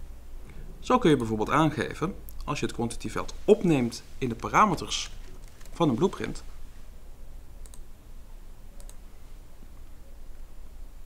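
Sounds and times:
steady low hum: 0.0 - 11.0
computer mouse click: 7.6 - 7.9, 8.8 - 9.0.

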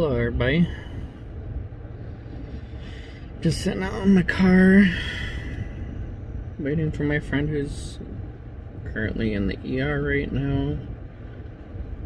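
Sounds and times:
low rumble in car cabin: 0.0 - 12.0.

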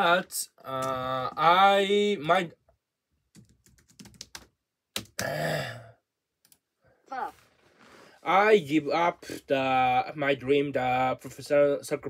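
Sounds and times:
man sighing: 5.2 - 6.0.

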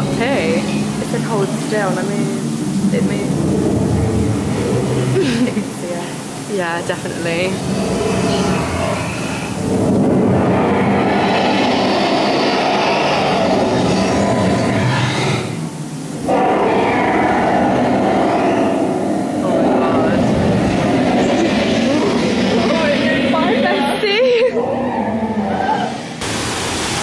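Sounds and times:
dragon growling and rumbling: 0.0 - 5.8, 6.9 - 26.1.

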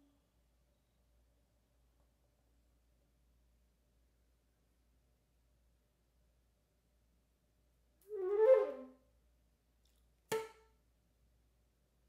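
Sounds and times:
flute playing: 8.1 - 9.0.

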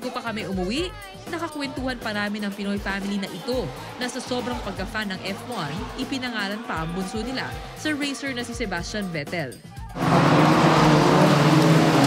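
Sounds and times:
racing car engines passing: 10.0 - 12.0.

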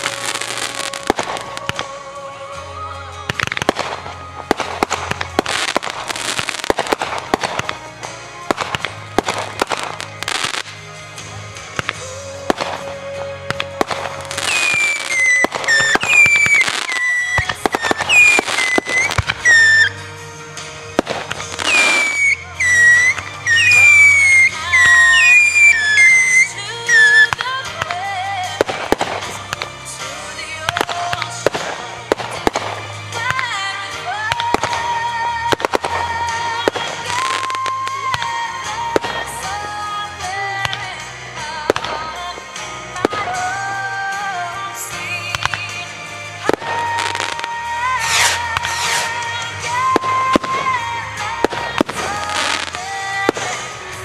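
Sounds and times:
fireworks bursting and crackling: 0.0 - 54.0
music playing: 0.0 - 54.0.

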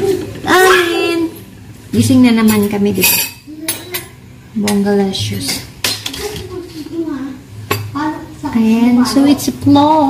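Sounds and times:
metal spoon clinking against bowl: 2.4 - 6.4.

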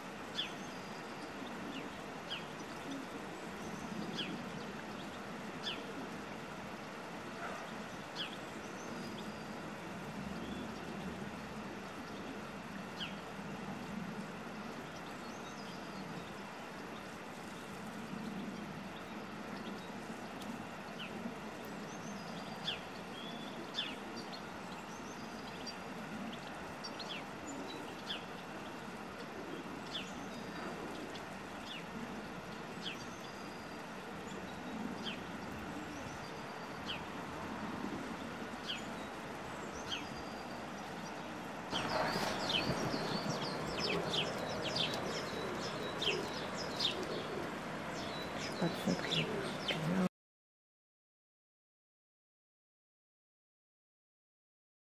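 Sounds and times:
songbirds chirping: 0.0 - 50.1
steady background noise: 0.0 - 50.1.

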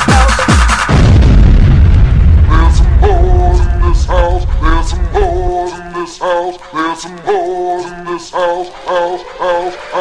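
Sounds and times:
hard house dance music: 0.0 - 1.2, 2.4 - 10.0.

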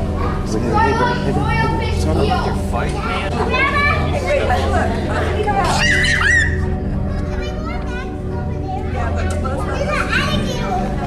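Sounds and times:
steady low hum: 0.0 - 5.8
children's voices chattering: 0.0 - 11.0.

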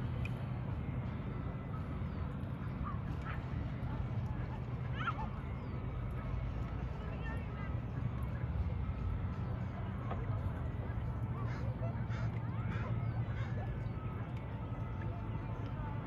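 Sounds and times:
faint calls: 11.0 - 14.7.

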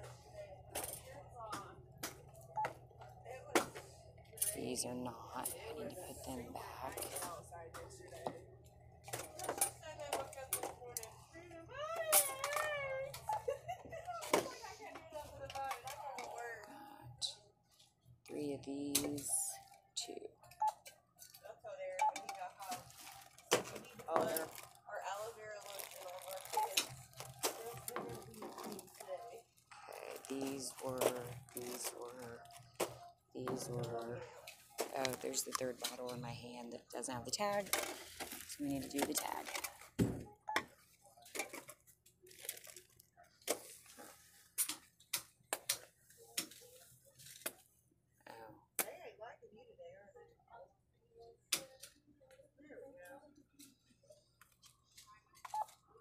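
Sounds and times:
plastic bags rustling: 22.4 - 36.1, 37.4 - 40.0, 40.8 - 44.6.

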